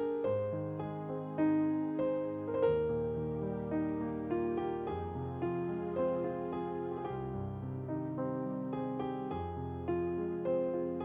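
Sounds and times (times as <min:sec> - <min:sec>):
slow soft piano music: 0:00.0 - 0:11.0.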